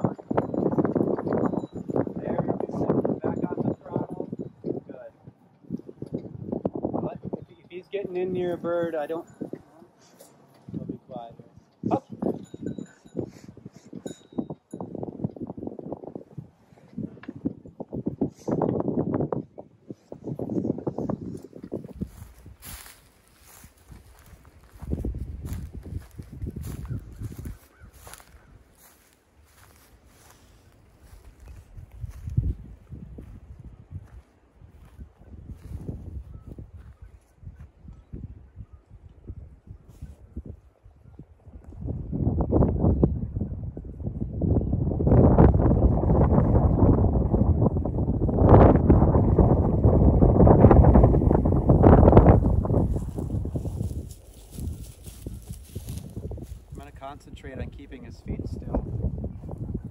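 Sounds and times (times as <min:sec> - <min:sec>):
footsteps rustling through dry grass: 0:20.0 - 0:37.7, 0:49.8 - 0:57.0, 0:58.4 - 0:59.9.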